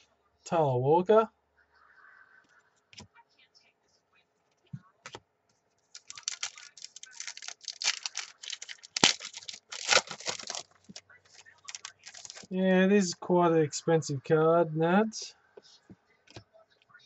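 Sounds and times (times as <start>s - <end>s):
foil pack tearing and crinkling: 6.0s - 12.5s
wrapper snapping: 6.0s - 12.5s.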